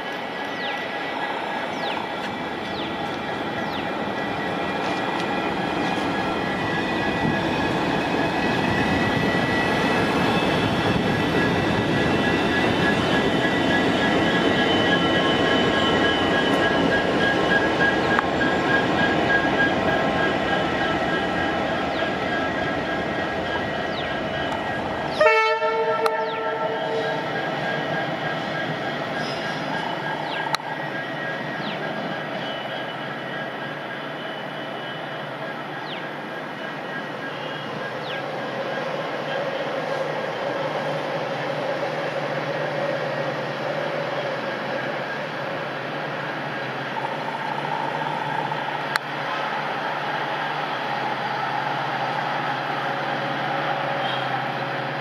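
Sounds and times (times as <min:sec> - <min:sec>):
diesel locomotive engine rumble: 0:00.0 - 0:55.0
distant train: 0:00.0 - 0:55.0
locomotive horn blast: 0:25.1 - 0:27.2.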